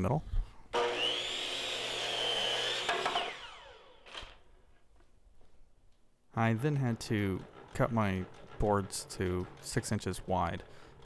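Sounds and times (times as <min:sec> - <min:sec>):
miter saw cutting wood: 0:00.7 - 0:04.5, 0:06.6 - 0:11.0.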